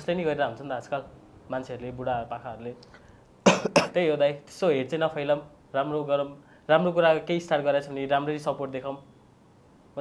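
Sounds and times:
man coughing: 3.4s - 4.0s.

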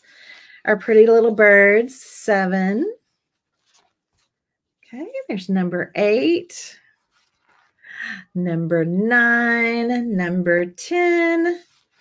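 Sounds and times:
paper napkins rustling: 3.0s - 5.0s, 6.3s - 8.0s, 11.0s - 12.0s.

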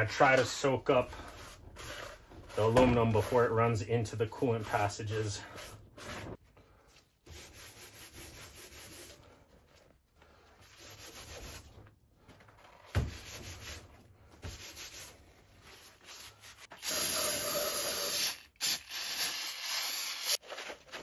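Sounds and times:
paper towel rubbing wet sandpaper: 10.6s - 11.7s
aerosol spray can hissing: 16.8s - 20.4s.

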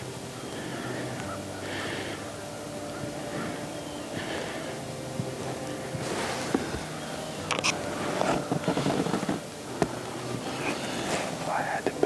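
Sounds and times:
rustling on dry leaves: 0.0s - 12.0s.

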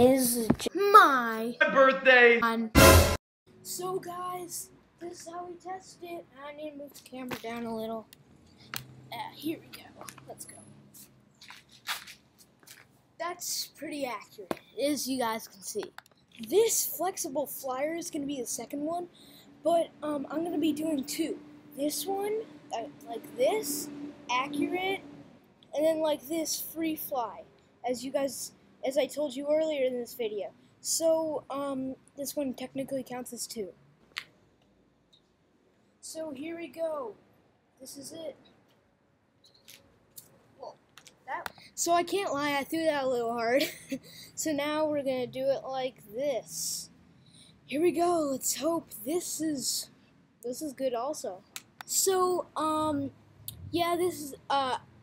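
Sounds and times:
faint short clicks and scuffs: 11.0s - 12.9s, 39.4s - 41.7s.

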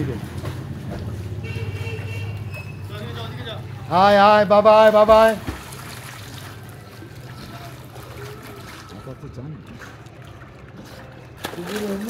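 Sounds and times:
faint voices: 6.6s - 12.0s.

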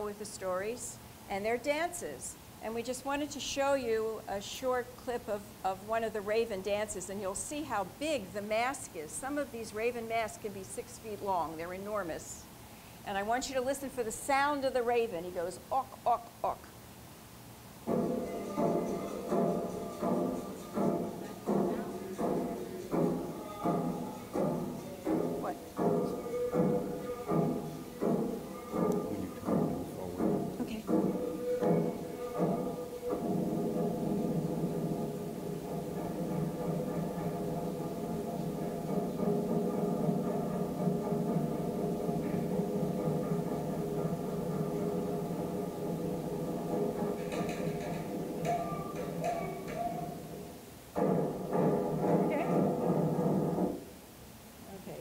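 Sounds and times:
drum beats: 17.8s - 53.9s
held chanting: 17.9s - 39.8s, 46.7s - 50.6s
group singing: 18.0s - 30.1s, 31.0s - 35.0s.

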